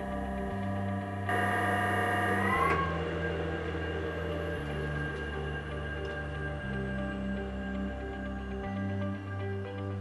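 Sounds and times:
motor whining: 0.0 - 7.4
soft background music: 0.0 - 10.0.

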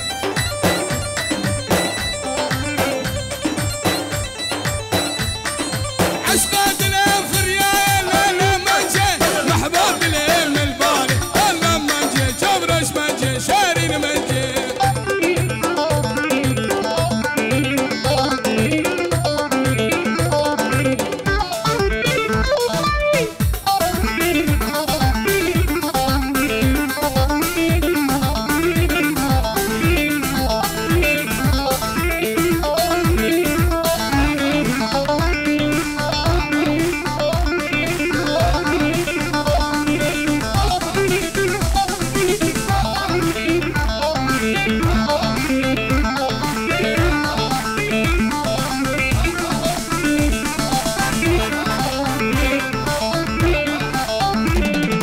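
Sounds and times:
plucked electric string melody: 0.0 - 55.0
steady drum beat: 0.0 - 55.0.

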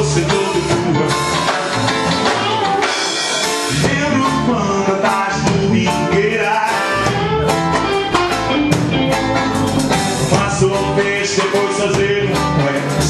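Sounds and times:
man singing: 0.0 - 2.0, 3.4 - 8.3, 9.9 - 13.0
drum kit: 0.0 - 13.0
electric guitars: 0.0 - 13.0.

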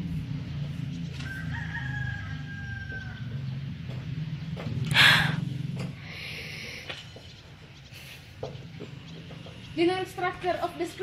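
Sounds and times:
steady low hum: 0.0 - 11.0
rooster crowing: 1.2 - 3.5.

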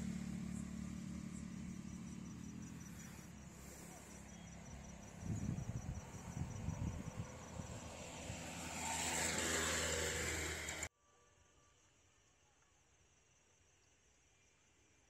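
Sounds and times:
motor vehicle running: 0.0 - 10.9.

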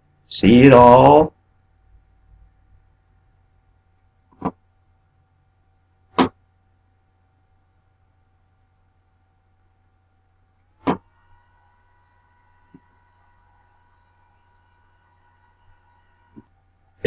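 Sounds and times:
faint electronic whine: 0.0 - 17.0.

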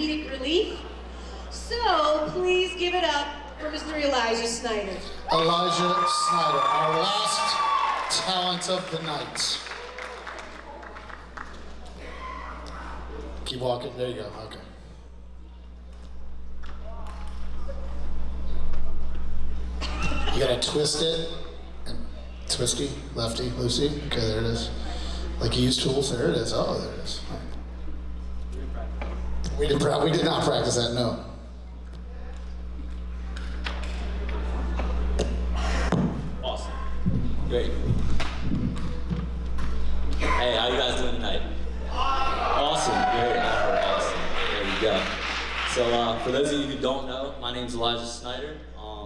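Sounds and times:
low electrical hum: 0.0 - 49.0.

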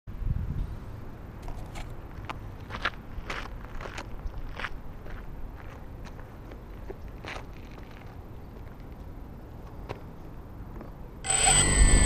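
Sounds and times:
wind rumble on microphone: 0.1 - 1.0.

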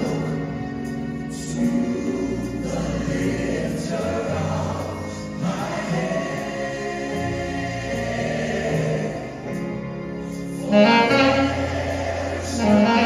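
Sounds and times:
organ playing gospel chords: 0.0 - 13.0.

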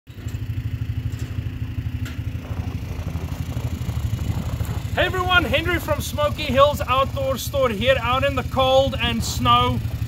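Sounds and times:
engine idling: 0.1 - 10.0.

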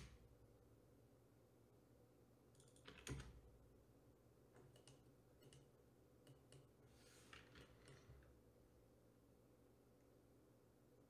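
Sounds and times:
computer keyboard keystrokes: 2.6 - 3.3, 4.6 - 5.7.

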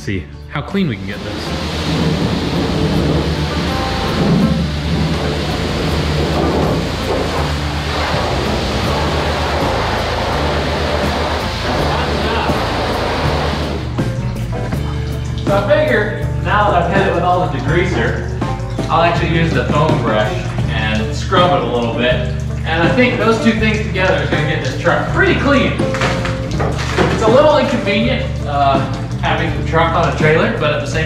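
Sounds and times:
music with steady bass line: 0.0 - 31.0
pressure washer spraying: 1.0 - 14.3.

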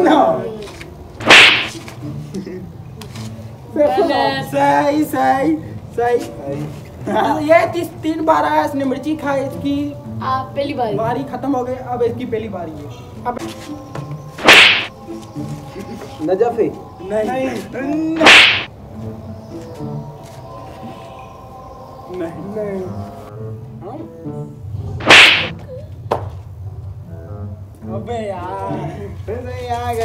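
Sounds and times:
loud whoosh: 1.2 - 1.8, 14.4 - 14.9, 18.2 - 18.7, 25.0 - 25.5
smack on motorcycle helmet: 1.2 - 1.8, 14.4 - 14.9, 18.2 - 18.7, 25.0 - 25.5.

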